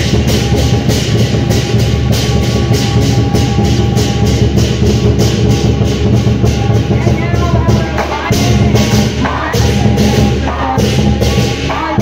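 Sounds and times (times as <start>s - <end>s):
cymbals clashing: 0.0s - 12.0s
large drum beating: 0.0s - 12.0s.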